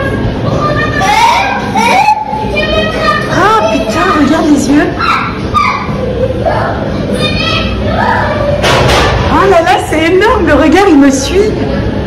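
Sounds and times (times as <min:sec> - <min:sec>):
voices in a busy room: 0:00.0 - 0:12.0
high-pitched cries: 0:05.0 - 0:08.5.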